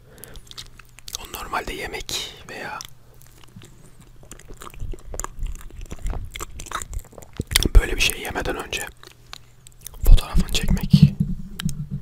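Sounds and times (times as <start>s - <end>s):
close-miked chewing: 0.1s - 10.8s.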